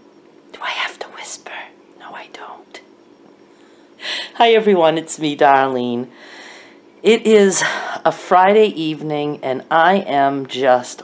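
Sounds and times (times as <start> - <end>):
woman whispering: 0.5 - 2.9.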